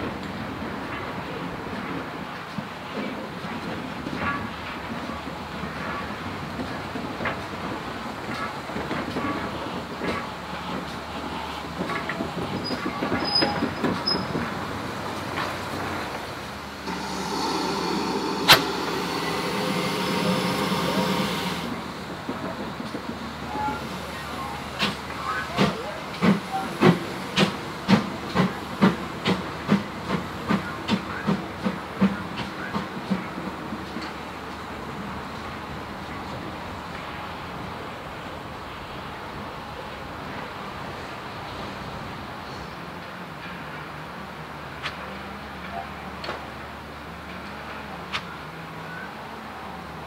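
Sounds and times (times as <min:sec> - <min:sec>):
steam locomotive chuffing: 0:16.6 - 0:34.1
steam hissing: 0:16.8 - 0:22.4.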